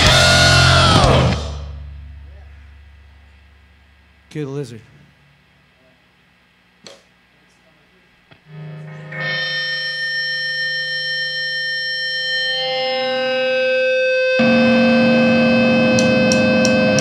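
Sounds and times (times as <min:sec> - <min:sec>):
distorted guitar chord: 0:00.0 - 0:04.5, 0:08.3 - 0:17.0
electric guitars sustained notes: 0:00.0 - 0:05.4, 0:08.3 - 0:17.0.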